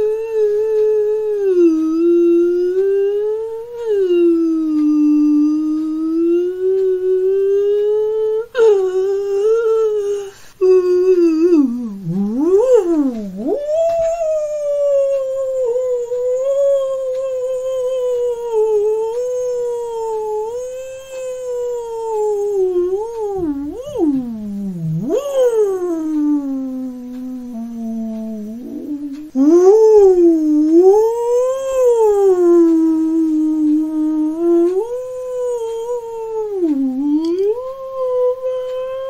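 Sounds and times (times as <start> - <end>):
long wavering howl: 0.0 - 39.0.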